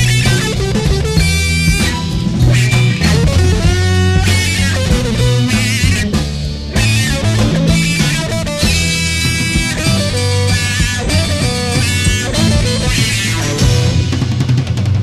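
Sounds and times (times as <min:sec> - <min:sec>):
plucked string lead line: 0:00.0 - 0:14.8
bass guitar line: 0:00.0 - 0:15.0.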